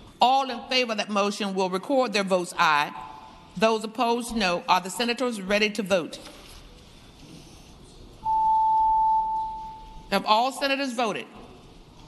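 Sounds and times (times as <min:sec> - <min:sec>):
pure electronic tone: 0:08.2 - 0:09.9.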